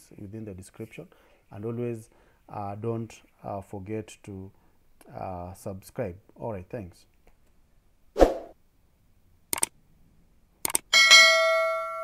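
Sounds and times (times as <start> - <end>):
short swish: 8.2 - 8.6
double click: 10.6 - 10.8
bell-like ding: 11.0 - 12.0.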